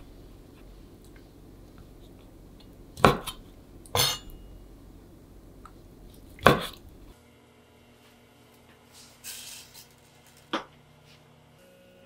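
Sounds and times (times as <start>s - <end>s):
knife striking cutting board: 3.0s - 3.4s, 6.4s - 6.8s.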